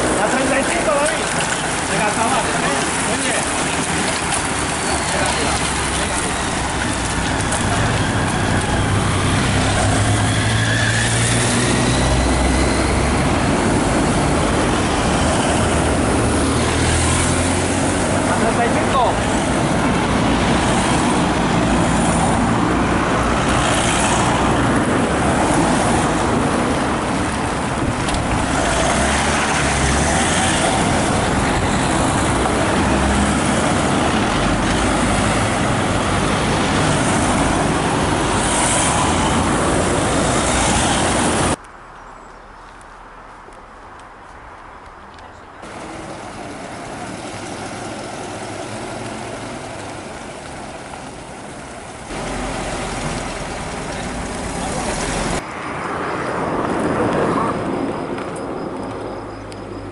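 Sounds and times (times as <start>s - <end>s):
cars driving past: 0.0s - 42.0s, 45.6s - 59.9s.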